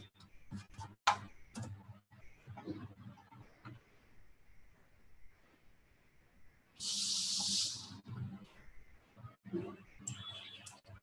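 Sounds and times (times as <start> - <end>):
loud high-pitched hiss: 6.8 - 8.0.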